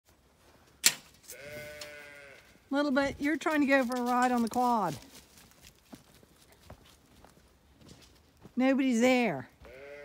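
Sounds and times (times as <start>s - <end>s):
sheep bleating: 1.3s - 2.6s, 9.6s - 10.0s.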